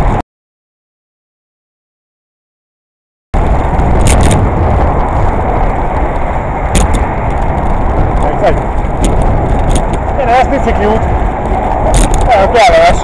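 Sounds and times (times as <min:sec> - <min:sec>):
wind rumble on microphone: 0:00.0 - 0:00.2, 0:03.4 - 0:13.0
passing car traffic: 0:03.4 - 0:13.0.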